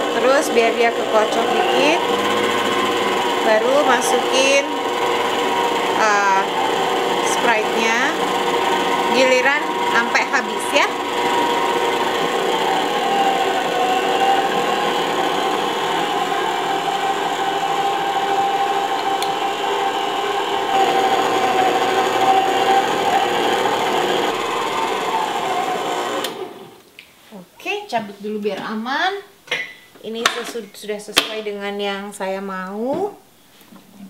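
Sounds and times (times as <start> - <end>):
stand mixer motor whine: 0.0 - 26.8.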